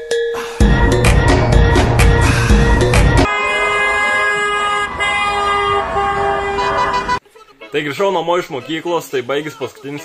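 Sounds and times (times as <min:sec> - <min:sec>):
car horns honking: 0:00.8 - 0:07.2.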